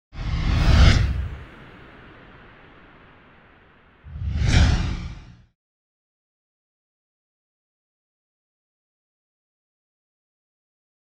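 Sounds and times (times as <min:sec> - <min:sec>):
whoosh sound effects: 0:00.2 - 0:03.2, 0:04.0 - 0:05.5
deep rumble: 0:00.2 - 0:05.5.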